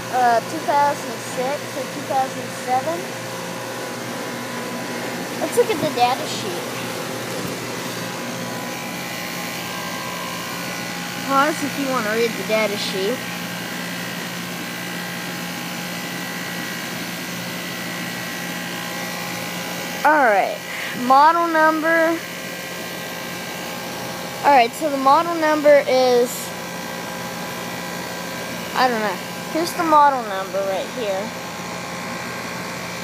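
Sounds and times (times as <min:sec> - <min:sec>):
compressor hum: 0:00.0 - 0:33.0
condenser fan rush of air: 0:00.0 - 0:33.0.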